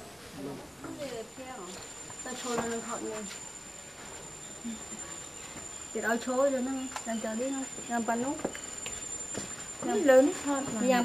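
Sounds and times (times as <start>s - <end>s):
high-pitched insect trill: 0.9s - 11.0s.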